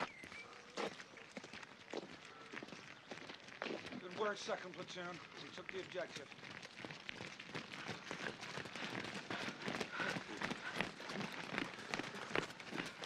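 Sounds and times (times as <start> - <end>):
boots running on wet road: 0.0 - 13.0.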